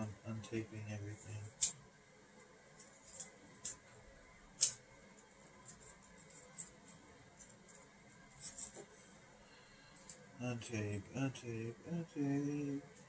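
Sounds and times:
paper packaging clicks and rustles: 0:04.6 - 0:09.0.

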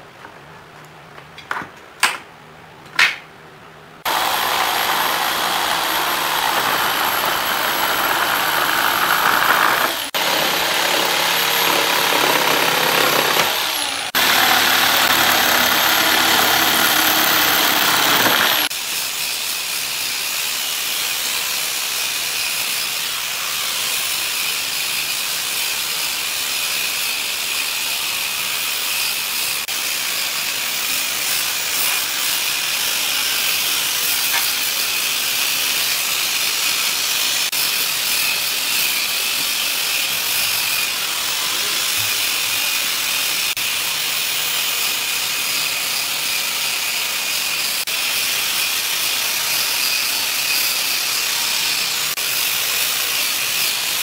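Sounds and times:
angle grinder sanding wood: 0:04.0 - 0:54.0
cordless drill whining: 0:04.1 - 0:18.7.

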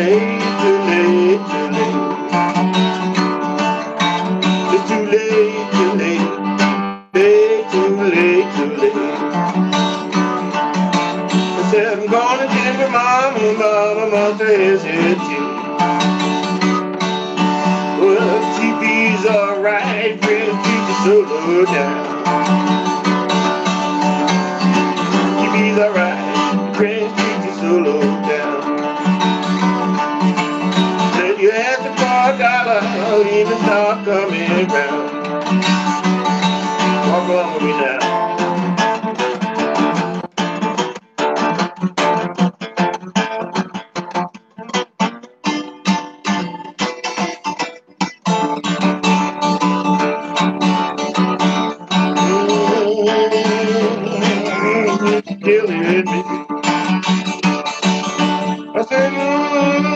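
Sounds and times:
man singing: 0:00.0 - 0:02.8, 0:03.9 - 0:10.5, 0:11.4 - 0:16.0, 0:17.8 - 0:36.2, 0:36.8 - 0:39.2, 0:51.1 - 0:59.9
twelve-string acoustic guitar blues: 0:00.0 - 0:59.9.

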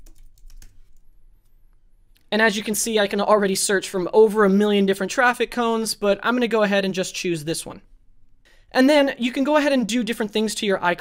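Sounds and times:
typing on computer keyboard: 0:00.0 - 0:01.0.

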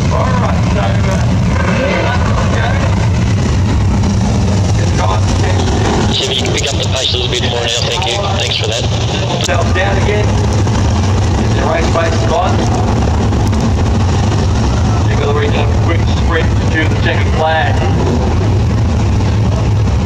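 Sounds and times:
voice: 0:00.0 - 0:03.0, 0:04.8 - 0:10.4, 0:11.4 - 0:12.8, 0:15.0 - 0:18.0
race car engines rumbling: 0:00.0 - 0:20.0.

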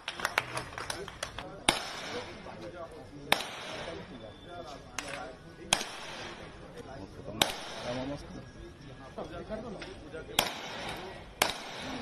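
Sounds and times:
murmur of voices: 0:00.0 - 0:12.0
rifle shots: 0:01.7 - 0:02.4, 0:05.7 - 0:06.5, 0:07.4 - 0:08.0, 0:10.4 - 0:12.0.

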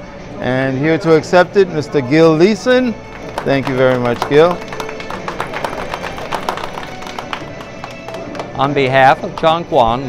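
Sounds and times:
music with quick sharp notes: 0:02.5 - 0:10.0.

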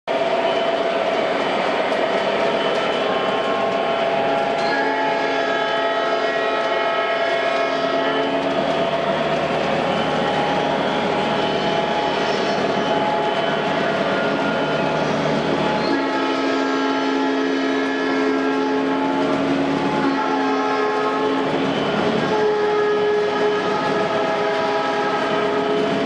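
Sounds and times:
model train diesel engine sound: 0:00.1 - 0:26.0
train rolling on track: 0:00.1 - 0:26.0.

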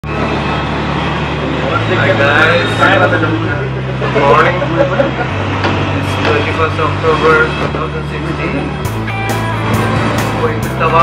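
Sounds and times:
low engine hum: 0:00.0 - 0:11.0
road noise: 0:00.0 - 0:11.0.

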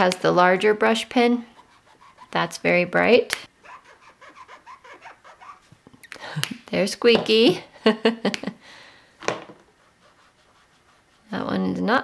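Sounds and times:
brush marker scratching on paper: 0:01.4 - 0:02.8, 0:03.6 - 0:05.7, 0:09.7 - 0:11.8.

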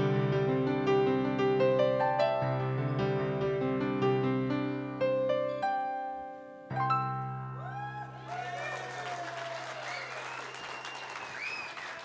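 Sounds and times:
piano chord ringing: 0:00.0 - 0:08.0
people whooping: 0:07.6 - 0:12.0
audience applauding: 0:08.0 - 0:12.0.

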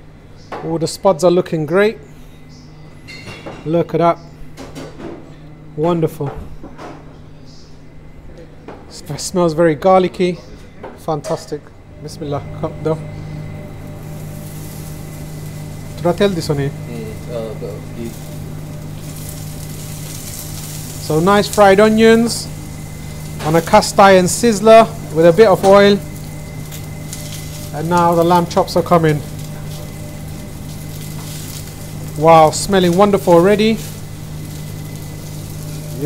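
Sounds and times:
steady low hum: 0:00.0 - 0:36.0
onions sizzling in oil: 0:13.1 - 0:36.0.

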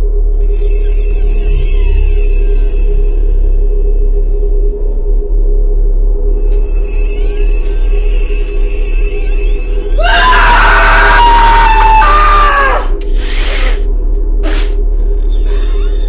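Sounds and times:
people screaming: 0:10.0 - 0:12.9.

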